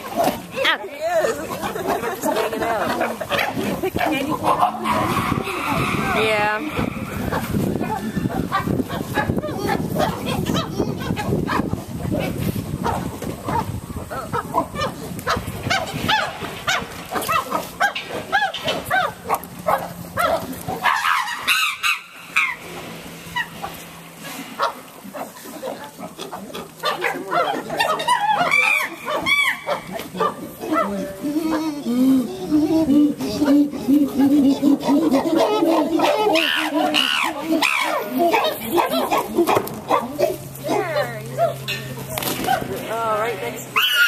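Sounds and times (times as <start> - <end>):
chimpanzees calling: 0.0 - 12.4, 14.0 - 44.0.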